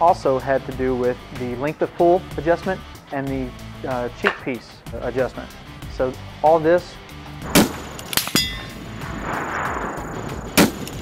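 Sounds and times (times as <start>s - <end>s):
rifle shot: 7.4s - 9.8s, 10.5s - 11.0s
bullet hitting steel target: 7.5s - 8.8s.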